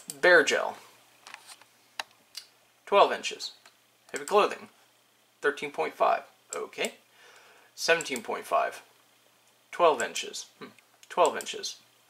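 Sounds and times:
man talking: 0:00.1 - 0:00.9, 0:02.9 - 0:04.8, 0:05.4 - 0:07.0, 0:07.8 - 0:08.9, 0:09.7 - 0:11.8
computer mouse clicks: 0:03.6 - 0:04.4.

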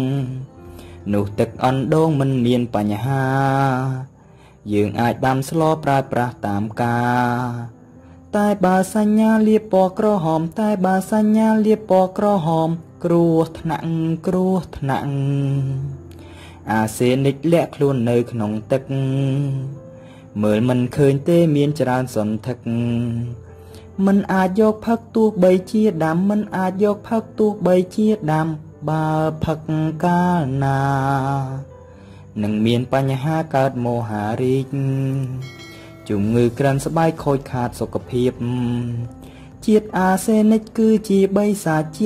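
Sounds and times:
person singing children's song: 0:00.0 - 0:07.7, 0:32.4 - 0:42.0
person singing slow melody: 0:00.0 - 0:42.0.

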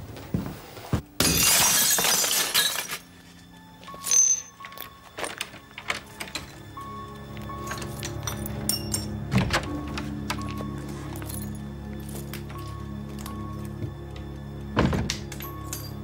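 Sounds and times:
glass pane smashing: 0:01.2 - 0:03.1
low tense music: 0:02.5 - 0:16.0.

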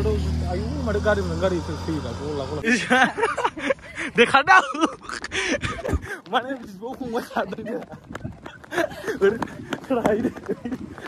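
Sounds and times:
running footsteps on pavement: 0:03.7 - 0:11.0.

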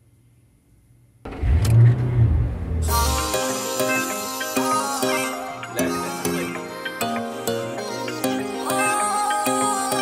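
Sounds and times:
car engine revving: 0:01.3 - 0:03.4
music: 0:02.9 - 0:10.0.

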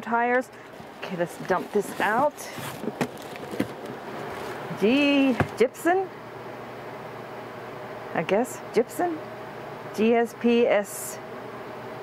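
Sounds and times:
rustling foam and plastic wrap: 0:00.7 - 0:05.4.

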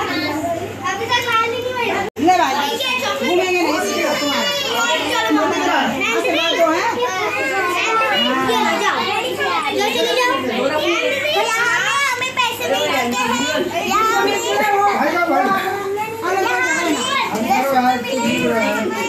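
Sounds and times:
children chattering: 0:00.0 - 0:19.0.

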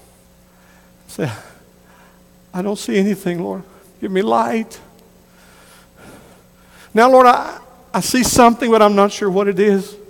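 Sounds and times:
faint steady hum: 0:00.0 - 0:10.0
soft intake of breath: 0:00.4 - 0:02.4, 0:05.2 - 0:07.0
man speaking: 0:01.1 - 0:01.6, 0:02.5 - 0:05.0, 0:06.9 - 0:10.0.

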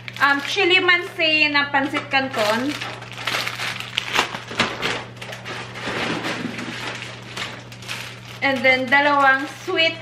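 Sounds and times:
plastic packets crinkling: 0:00.0 - 0:01.1, 0:01.7 - 0:10.0.

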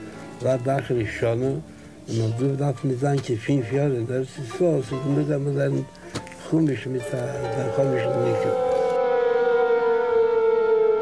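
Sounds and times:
air-raid siren wailing: 0:07.0 - 0:11.0.

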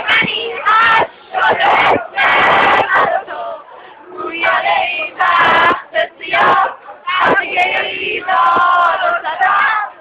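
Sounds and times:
crowd singing in unison: 0:00.0 - 0:10.0.

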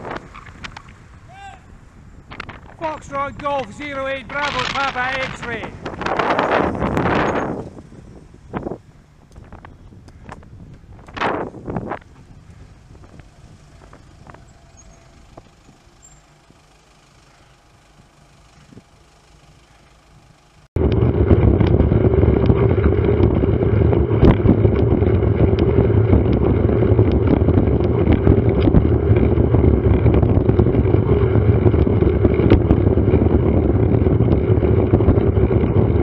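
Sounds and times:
wind rumble on microphone: 0:00.0 - 0:16.6, 0:17.7 - 0:19.0, 0:20.1 - 0:36.0
street traffic: 0:00.0 - 0:35.5
tyre and road noise: 0:00.0 - 0:36.0.

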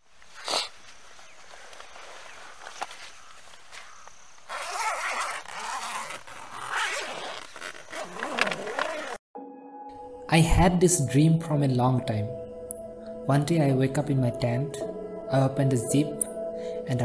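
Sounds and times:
zipper rasping: 0:04.5 - 0:09.2.

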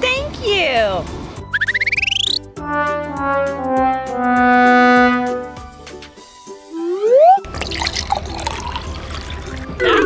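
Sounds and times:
loud musical sound effect: 0:01.6 - 0:05.7
liquid pouring from bottle: 0:07.4 - 0:09.8.

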